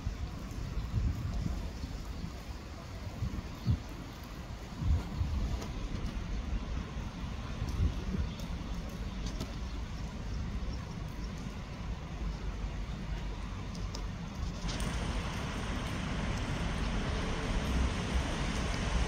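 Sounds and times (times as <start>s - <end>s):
outdoor background rumble: 0.0s - 19.0s.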